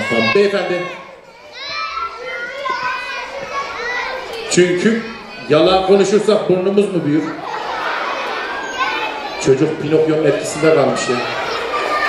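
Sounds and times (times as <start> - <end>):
child speaking: 0.0 - 5.5.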